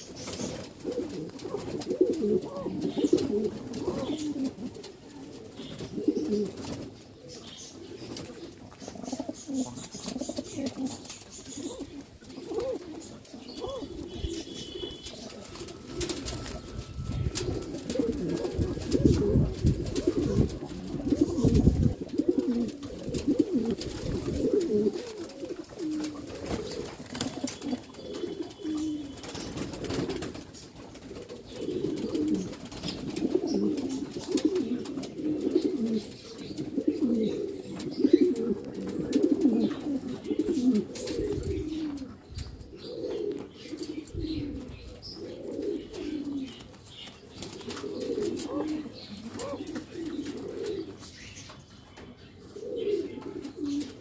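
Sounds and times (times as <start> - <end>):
pigeons cooing: 0.0 - 54.0.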